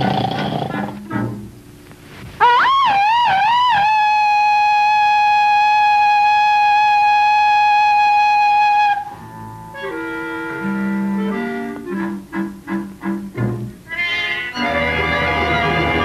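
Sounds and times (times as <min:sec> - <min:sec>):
lion roaring: 0:00.0 - 0:01.0.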